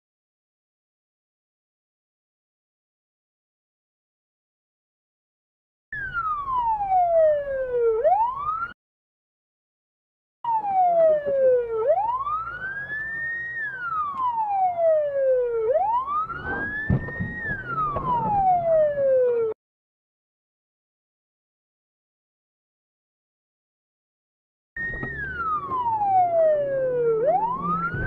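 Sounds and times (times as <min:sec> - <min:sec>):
police siren wailing: 0:06.0 - 0:08.8, 0:10.4 - 0:19.6, 0:24.8 - 0:28.0
low thuds: 0:16.4 - 0:18.7.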